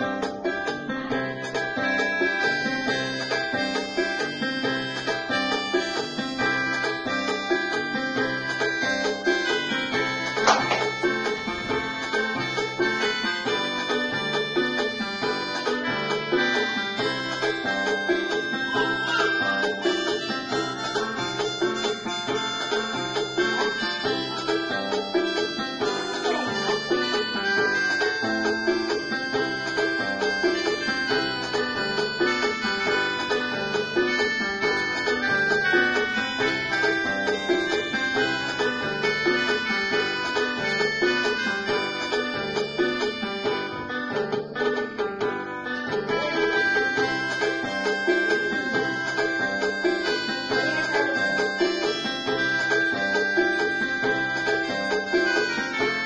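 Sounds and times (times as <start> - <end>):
electronic organ melody: 0.0 - 56.0.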